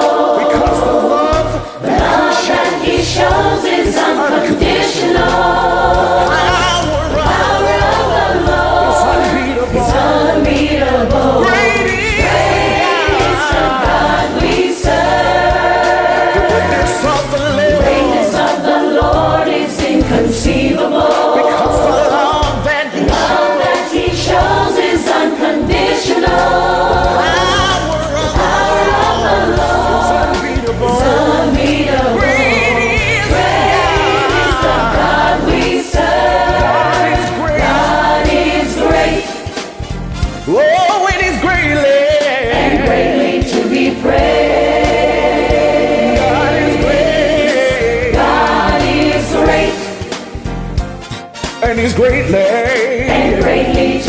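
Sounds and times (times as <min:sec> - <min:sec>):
gospel choir singing: 0:00.0 - 0:54.0
instrumental accompaniment: 0:00.0 - 0:54.0
steady bass line: 0:04.8 - 0:18.4, 0:25.6 - 0:40.6, 0:42.5 - 0:49.8.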